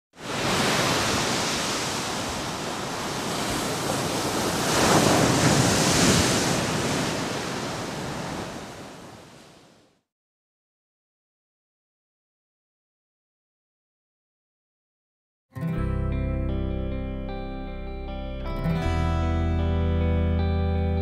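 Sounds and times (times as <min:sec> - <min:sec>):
rushing surf-like noise: 0:00.2 - 0:09.8.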